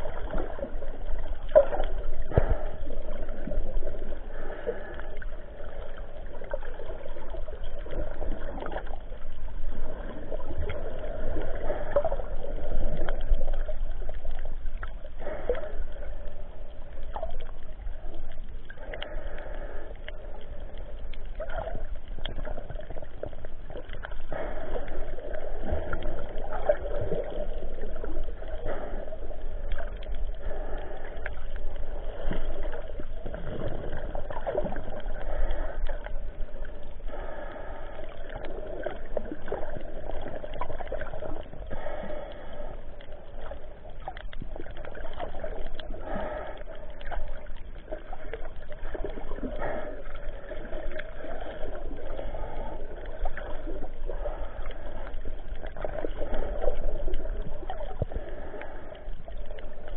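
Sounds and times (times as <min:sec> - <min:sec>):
underwater clicks: 0:00.0 - 0:59.9
water sloshing and gurgling: 0:00.0 - 0:59.9.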